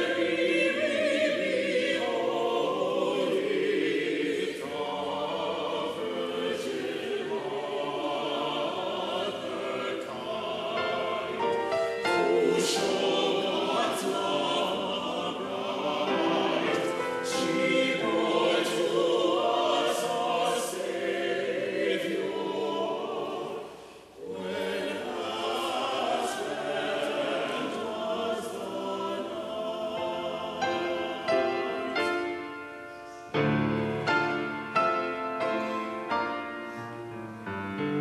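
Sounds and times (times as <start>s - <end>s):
mixed choir singing: 0.0s - 36.5s.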